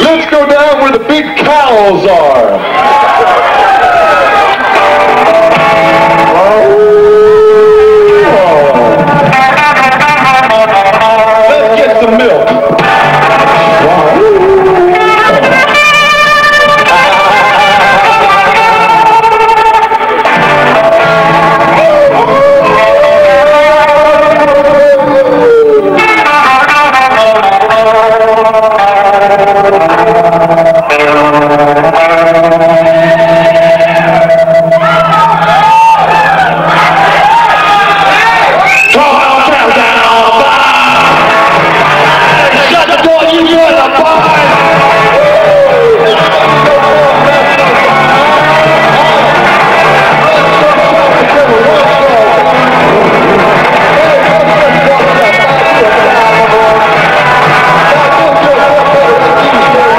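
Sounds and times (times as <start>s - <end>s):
drums: 0.0s - 59.9s
electric guitar bending notes: 0.0s - 59.9s
live band playing: 0.0s - 59.9s.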